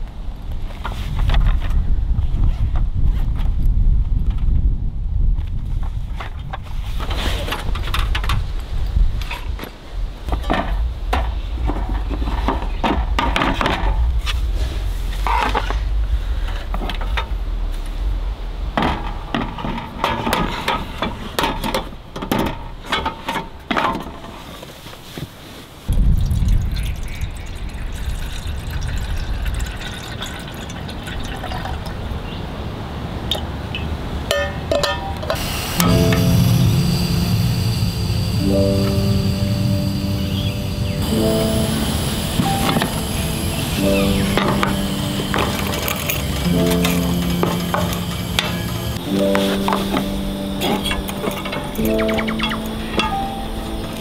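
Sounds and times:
water pouring into kettle: 26.0s - 32.0s
piano music with held chords: 34.4s - 54.0s.

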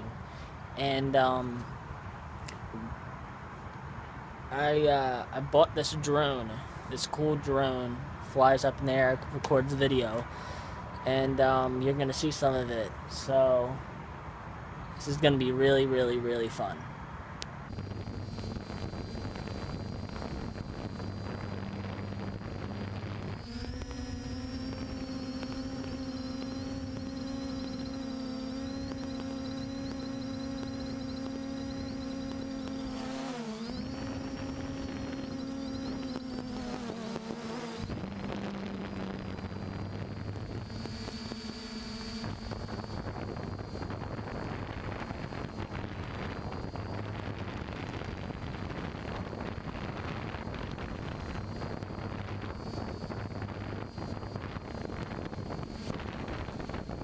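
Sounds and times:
low strong hum: 17.7s - 37.2s, 37.8s - 57.0s
quadcopter propellers buzzing: 17.7s - 57.0s.

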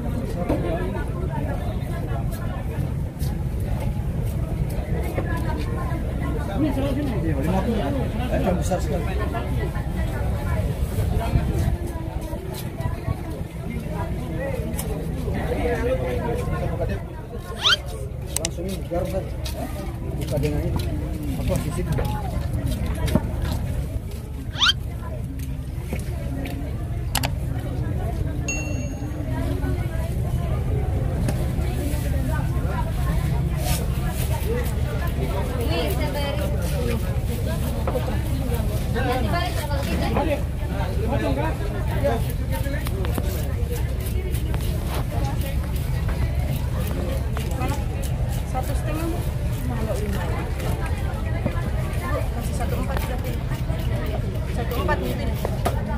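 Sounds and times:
chatter of voices: 0.0s - 55.9s.

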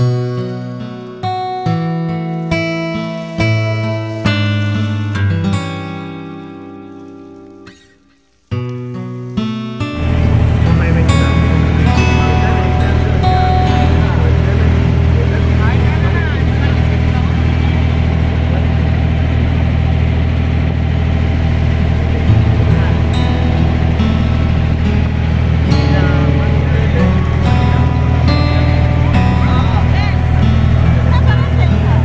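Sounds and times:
boat engine droning: 0.0s - 8.5s, 9.1s - 32.0s
music: 0.0s - 32.0s
voices: 10.0s - 32.0s.

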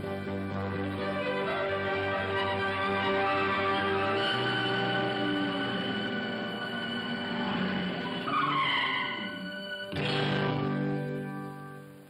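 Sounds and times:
background music: 0.0s - 12.0s
tyres squealing: 1.5s - 10.0s.

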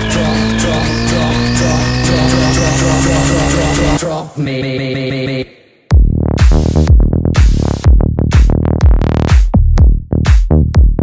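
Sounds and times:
rising synth sweep: 0.0s - 4.0s
sustained bass note: 0.0s - 4.1s
electronic dance music: 0.0s - 11.0s.

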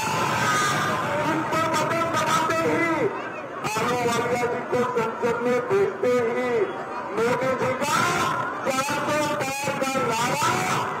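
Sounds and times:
background noise: 0.0s - 11.0s
man speaking through microphone: 0.0s - 11.0s.

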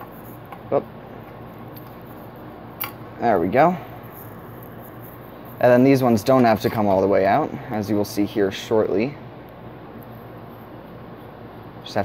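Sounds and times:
low background hum and hiss: 0.0s - 12.0s
man speaking: 3.2s - 3.9s, 5.6s - 9.2s.

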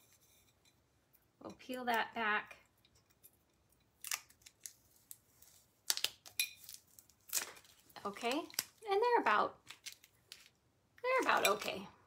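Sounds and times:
tape peeling crackling rips: 4.0s - 8.8s.

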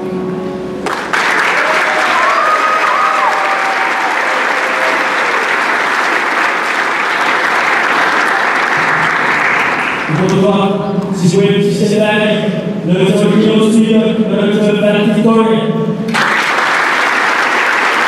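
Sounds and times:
audience applauding: 0.8s - 10.4s, 16.1s - 18.0s.

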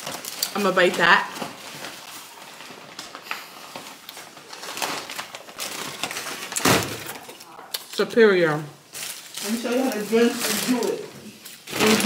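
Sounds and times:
paper wrappers crinkling: 0.0s - 12.0s.

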